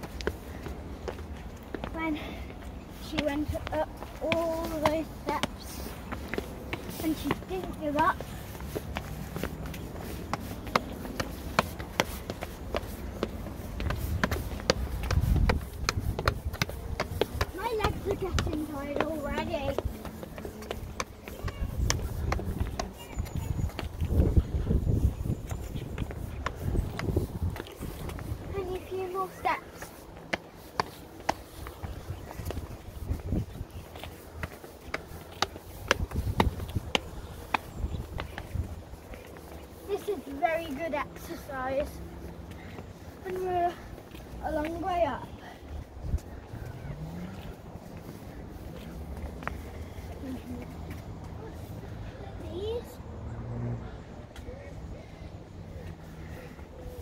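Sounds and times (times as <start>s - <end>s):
footsteps on stone steps: 0.0s - 52.9s.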